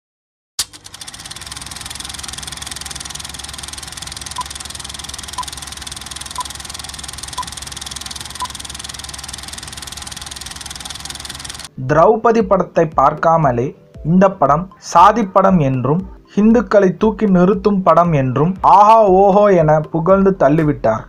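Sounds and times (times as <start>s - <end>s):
film projector clatter: 0.6s - 11.7s.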